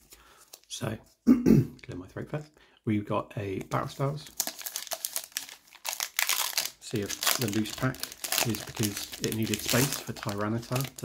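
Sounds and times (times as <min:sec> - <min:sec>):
foil wrapper crinkling: 0:03.7 - 0:11.0
foil wrapper tearing: 0:04.3 - 0:11.0.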